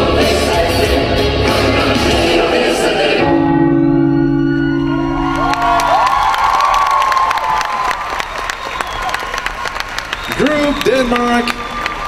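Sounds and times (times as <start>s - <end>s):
backing music held chord: 0.0s - 5.6s
audience cheering and whooping: 4.8s - 12.0s
applause: 5.2s - 12.0s.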